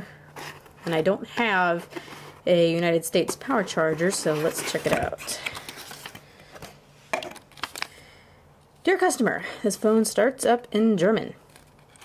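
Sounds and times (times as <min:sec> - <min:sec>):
paper and cardboard rustling: 0:00.3 - 0:02.6, 0:03.2 - 0:06.7.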